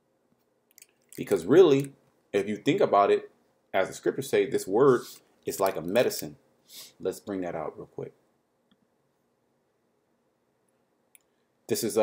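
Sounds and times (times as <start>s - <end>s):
person speaking: 0.8s - 8.2s.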